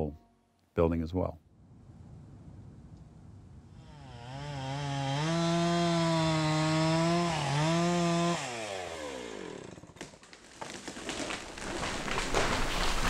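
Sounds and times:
chainsaw revving: 3.8 - 10.0.

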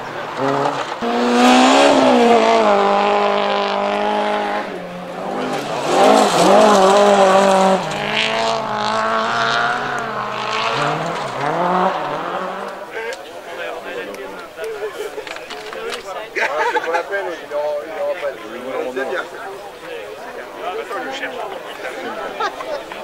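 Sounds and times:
rally car engines at full throttle: 0.0 - 23.0.

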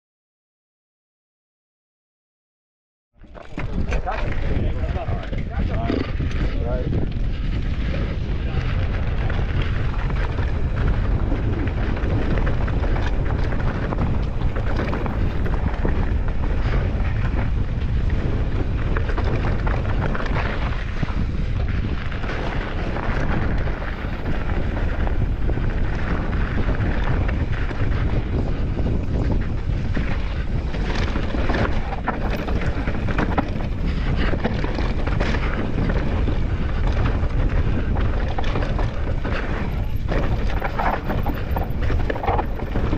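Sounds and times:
bike rattling and knocking: 3.2 - 42.9
wind buffeting microphone: 3.2 - 42.9
tyres crunching over loose stones: 30.6 - 42.9.

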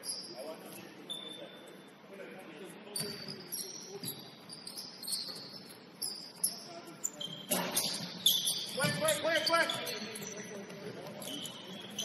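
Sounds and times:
shoes squeaking on hardwood floor: 3.0 - 12.0.

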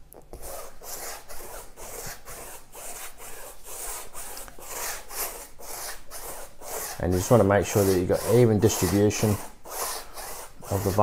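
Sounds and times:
paintbrush swishing over canvas: 0.4 - 11.0.

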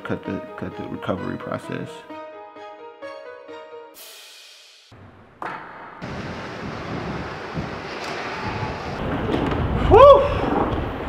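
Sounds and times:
wind rumbling on microphone: 6.0 - 11.0.

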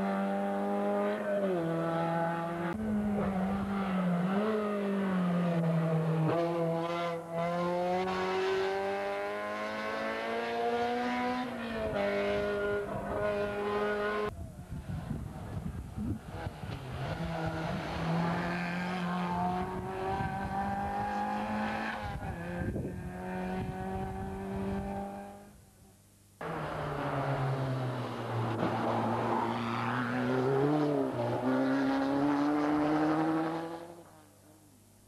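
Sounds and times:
rally car engines revving: 0.0 - 14.3, 15.4 - 25.5, 26.4 - 34.3.

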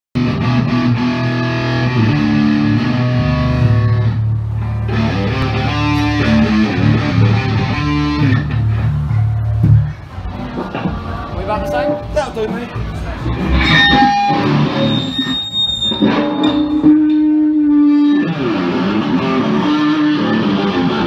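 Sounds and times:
bass guitar notes: 0.2 - 21.0
distorted electric guitar: 0.2 - 21.0.

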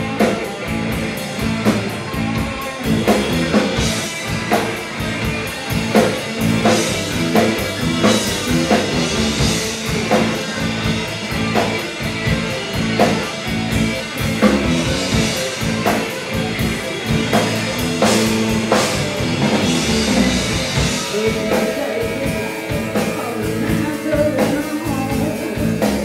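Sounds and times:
hard rock band playing: 0.0 - 26.0
heavy drum accents: 0.0 - 26.0
woman singing lead vocal: 21.1 - 26.0.

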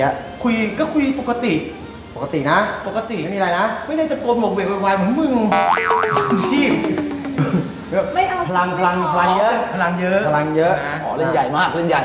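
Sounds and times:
long downward sliding tone: 5.5 - 7.5
cartoon boing: 5.5 - 7.7.

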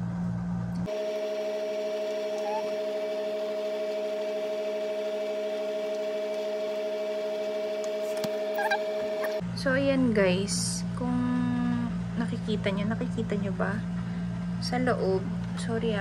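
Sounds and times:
steady hum of held tones: 0.0 - 16.0.

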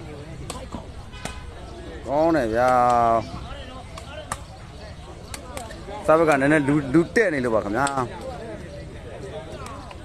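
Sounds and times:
faint crowd chatter: 0.0 - 10.0.

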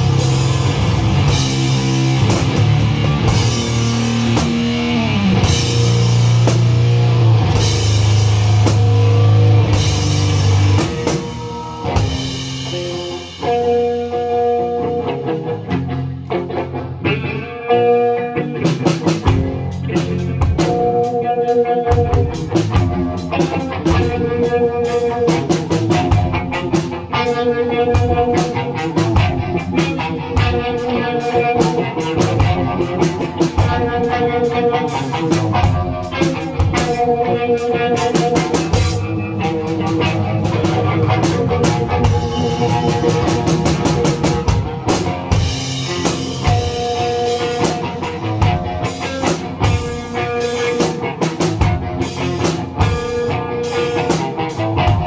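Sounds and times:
drum kit with cymbals: 0.0 - 15.9, 18.6 - 55.0
heavy rock electric guitar: 0.0 - 55.0.

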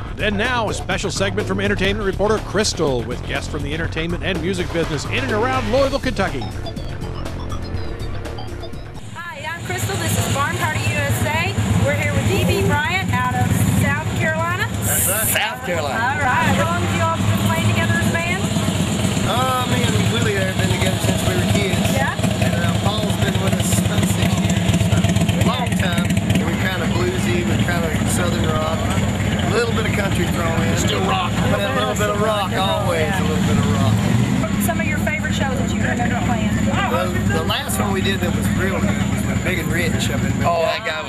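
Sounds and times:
low engine-like rumble: 0.0 - 41.0
voices talking: 0.0 - 41.0.

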